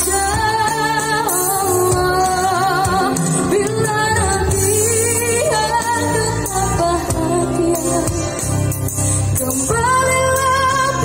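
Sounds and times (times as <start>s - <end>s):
live band: 0.0s - 11.0s
woman singing pop ballad: 0.0s - 11.0s.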